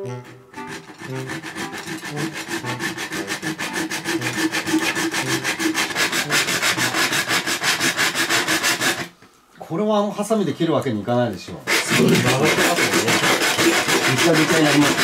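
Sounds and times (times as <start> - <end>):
hacksaw cutting metal pipe: 0.0 - 9.1, 11.7 - 15.0.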